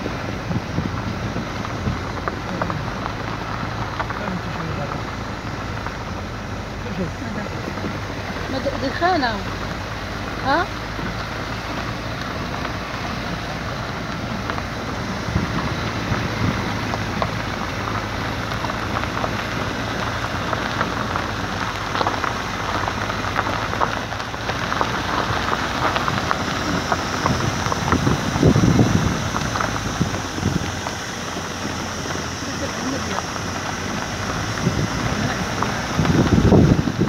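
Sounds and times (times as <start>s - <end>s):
engine drone: 0.0s - 37.0s
tyres crackling on gravel: 0.0s - 37.0s.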